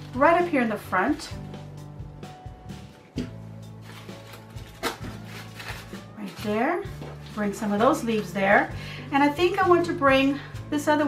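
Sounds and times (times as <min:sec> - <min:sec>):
background music with held bass: 0:00.0 - 0:11.0
artificial flowers rustling: 0:02.7 - 0:08.6.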